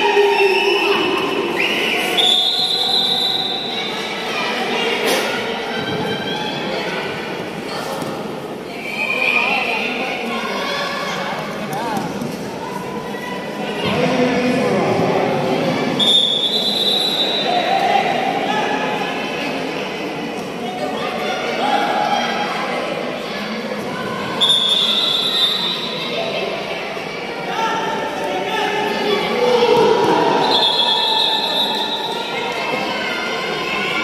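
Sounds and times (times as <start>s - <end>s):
sports hall din: 0.0s - 34.0s.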